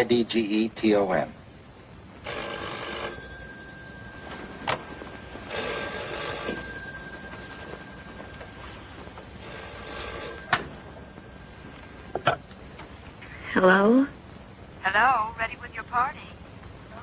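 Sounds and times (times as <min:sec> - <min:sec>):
telephone bell ringing: 0:02.2 - 0:12.3.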